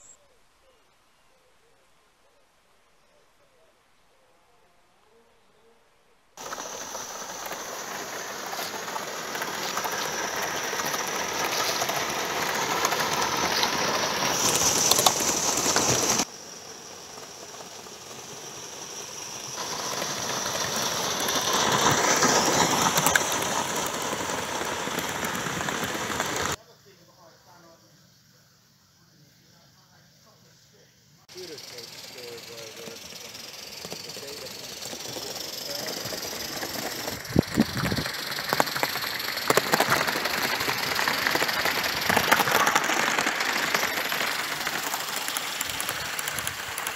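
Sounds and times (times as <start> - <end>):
model train wheels clattering: 6.4 - 26.6, 31.4 - 46.9.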